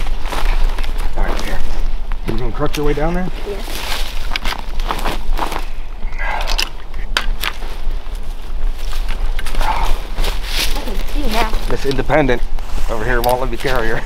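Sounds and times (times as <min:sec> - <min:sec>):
footsteps through dry leaves: 0:03.3 - 0:05.8, 0:07.6 - 0:11.8.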